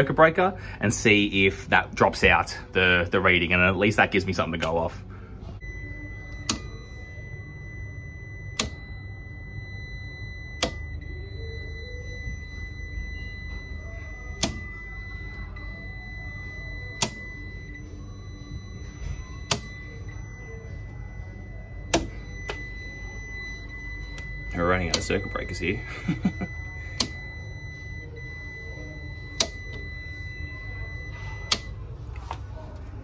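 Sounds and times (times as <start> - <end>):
multimeter continuity beeper tone: 0.0 - 33.0
circuit breakers clicking off: 4.2 - 5.0, 5.6 - 33.0.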